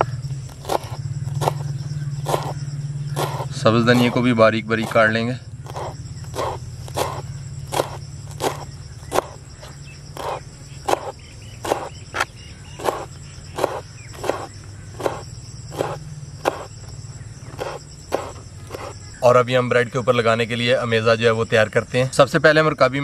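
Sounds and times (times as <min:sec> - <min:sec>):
knife chopping on wooden board: 0:00.5 - 0:05.1, 0:05.7 - 0:09.4, 0:10.2 - 0:16.8, 0:17.6 - 0:18.9.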